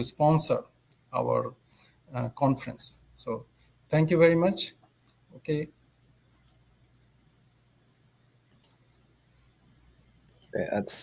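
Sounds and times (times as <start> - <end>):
computer mouse clicking: 6.3 - 6.7, 8.5 - 9.0, 10.2 - 10.6.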